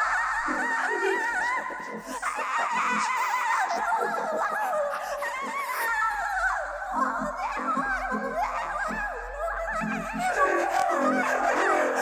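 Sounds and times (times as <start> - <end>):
woman's wordless warbling vocal: 0.3 - 12.0.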